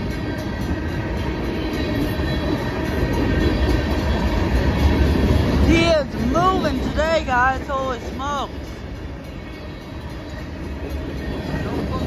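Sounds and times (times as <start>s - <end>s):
freight train wheels rumbling on rails: 0.0s - 12.0s.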